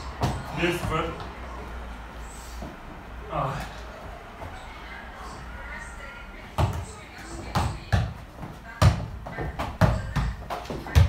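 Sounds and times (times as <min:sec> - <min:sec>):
ball thudding on rubber floor: 0:00.0 - 0:01.4, 0:06.4 - 0:11.0.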